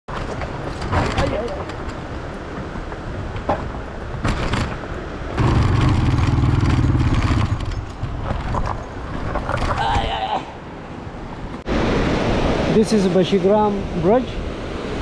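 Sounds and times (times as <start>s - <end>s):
knocks and rattles on rough track: 0.1s - 10.1s
vehicle engine running: 5.4s - 7.7s.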